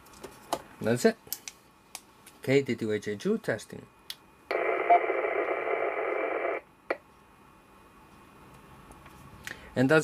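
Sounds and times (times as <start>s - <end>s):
radio static hiss: 4.5s - 6.7s.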